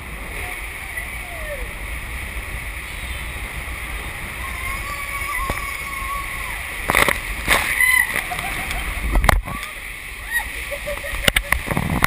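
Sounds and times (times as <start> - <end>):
sharp water splashes: 0.0 - 12.0
water rushing around a raft: 0.0 - 12.0.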